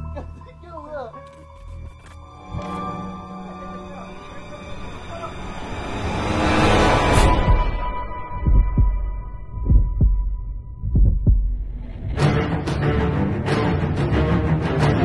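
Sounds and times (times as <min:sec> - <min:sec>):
eerie swell: 0:02.4 - 0:08.4
deep heartbeat-like thumps: 0:07.2 - 0:12.3.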